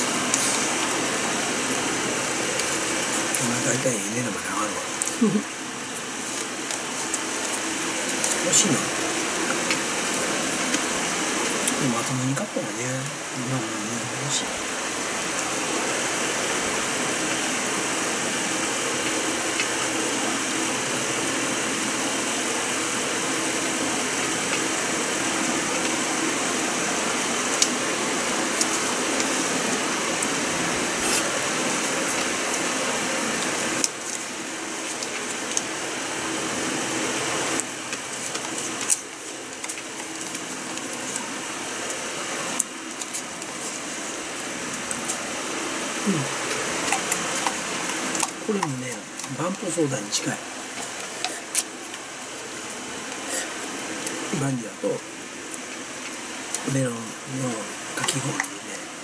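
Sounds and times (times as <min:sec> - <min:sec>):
machine noise like running fan: 0:00.0 - 0:59.0.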